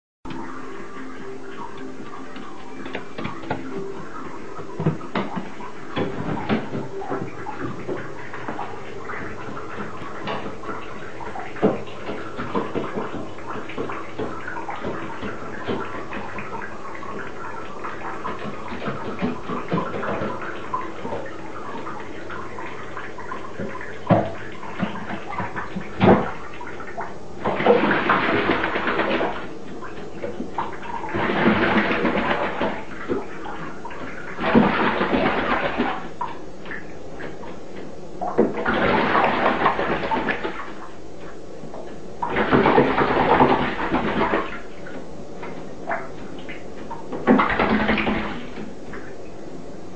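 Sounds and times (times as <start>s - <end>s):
bird wings splashing water: 2.3s - 41.4s, 42.2s - 49.1s.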